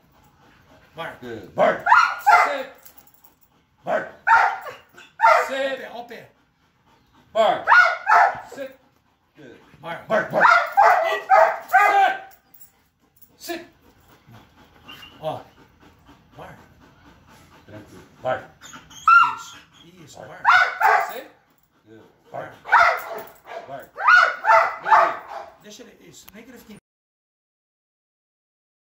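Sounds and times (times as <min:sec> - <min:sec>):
dog barking: 0:01.6 - 0:02.8, 0:03.8 - 0:05.7, 0:07.5 - 0:08.7, 0:10.1 - 0:12.4, 0:19.1 - 0:19.4, 0:20.3 - 0:21.4, 0:22.3 - 0:25.6
dog whimpering and yipping: 0:18.6 - 0:21.2.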